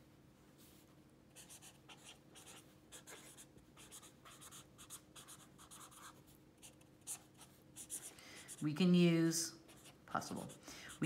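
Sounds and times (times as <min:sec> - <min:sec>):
marker scratching on paper: 0:01.4 - 0:08.7, 0:09.7 - 0:11.0.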